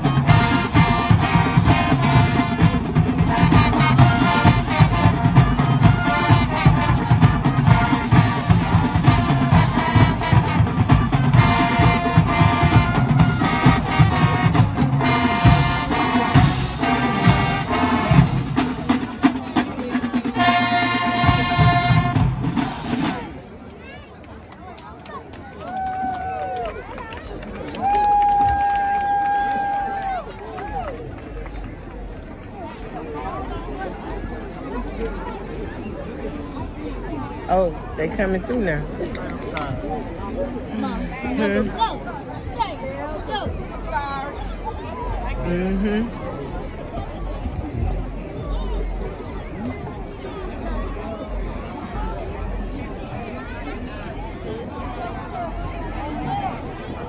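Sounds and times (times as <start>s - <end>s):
steady drum beat: 0.0s - 23.3s
marching band playing brass: 0.0s - 23.5s
crowd chatter: 0.0s - 57.0s.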